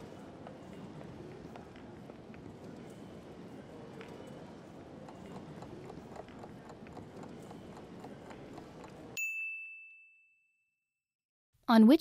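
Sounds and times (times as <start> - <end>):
soft timer ticking: 4.0 - 9.3
bell ding: 9.2 - 10.8.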